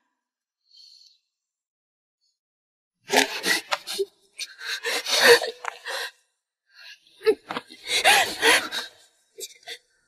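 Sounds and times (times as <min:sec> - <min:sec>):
woman breathy cries: 0:04.5 - 0:06.1.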